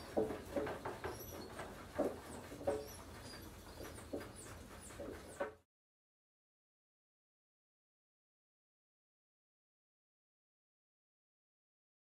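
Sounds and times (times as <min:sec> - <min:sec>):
mole-rats chirping: 0:02.3 - 0:05.4.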